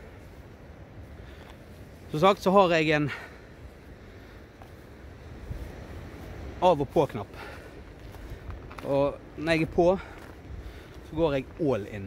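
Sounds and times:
low outdoor rumble: 0.0s - 12.0s
man speaking: 2.1s - 3.3s, 6.6s - 7.5s, 8.8s - 10.1s, 11.1s - 12.0s.

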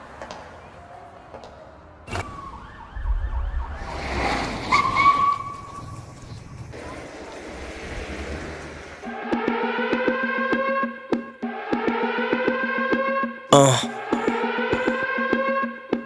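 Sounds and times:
siren wailing: 2.0s - 4.0s.

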